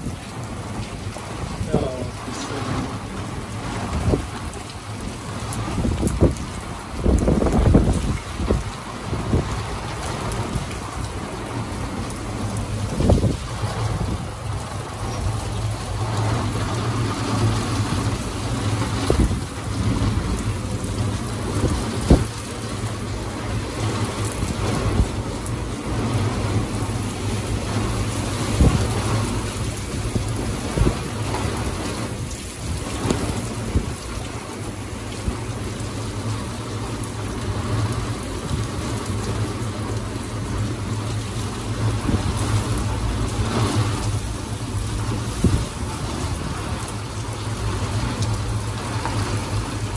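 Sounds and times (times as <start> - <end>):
heavy rain: 0.0 - 49.9.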